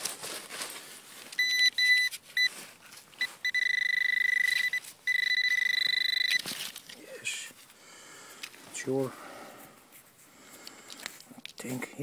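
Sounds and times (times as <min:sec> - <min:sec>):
metal detector pinpointer beeping: 0:01.4 - 0:02.5, 0:03.2 - 0:06.5.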